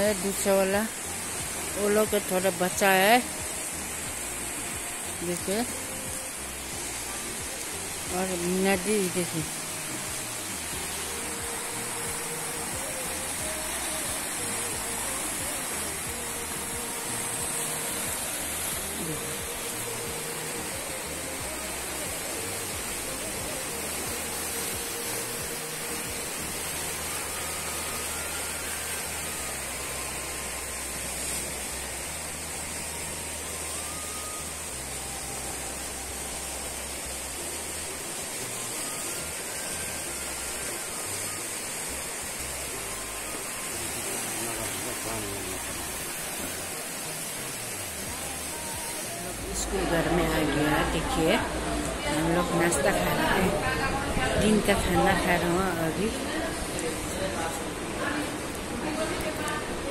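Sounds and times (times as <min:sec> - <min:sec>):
river rushing: 0:00.0 - 0:59.9.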